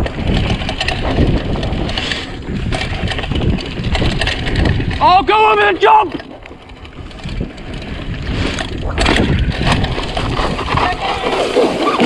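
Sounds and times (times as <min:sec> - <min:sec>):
bike tyre and frame rattle: 0:00.0 - 0:12.0
wind on microphone: 0:00.0 - 0:12.0.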